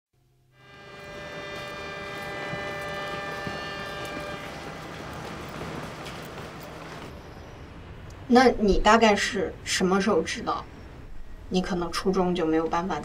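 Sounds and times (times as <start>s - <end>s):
sustained ringing chord: 0.5s - 8.0s.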